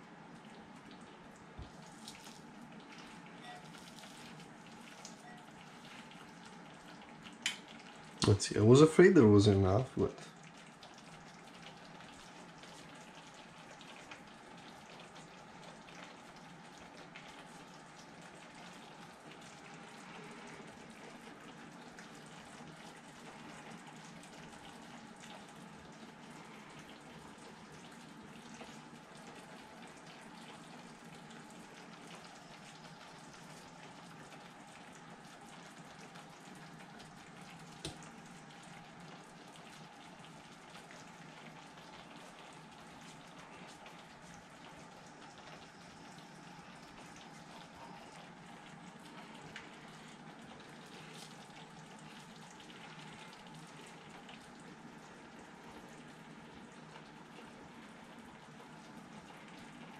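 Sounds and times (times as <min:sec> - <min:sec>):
sauce simmering with crackling: 0:00.0 - 0:59.9.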